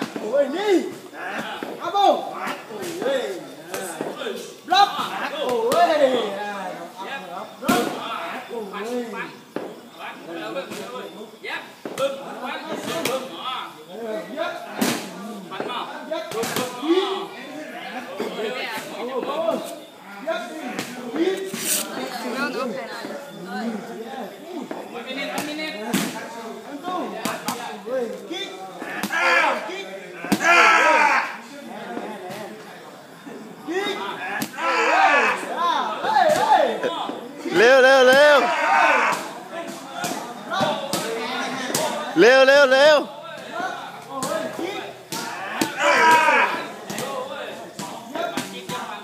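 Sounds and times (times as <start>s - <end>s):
voices: 0.0s - 49.0s
people shouting: 28.8s - 31.4s, 33.7s - 36.9s, 37.5s - 39.4s, 42.2s - 47.2s.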